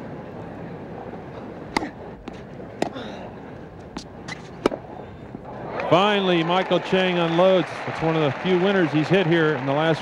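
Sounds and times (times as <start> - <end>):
low crowd murmur: 0.0 - 10.0
rackets hitting tennis ball: 1.6 - 5.5
tennis ball bouncing on court: 1.7 - 3.0, 3.9 - 4.9.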